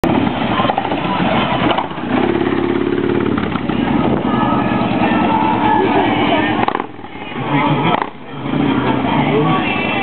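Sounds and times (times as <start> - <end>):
motorcycle engine running: 0.0 - 10.0
people talking: 0.1 - 2.3, 3.7 - 10.0.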